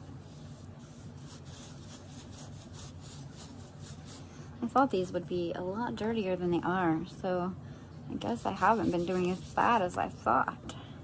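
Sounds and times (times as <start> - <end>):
cotton pad rubbing metal plate: 0.0 - 4.2, 8.2 - 9.9.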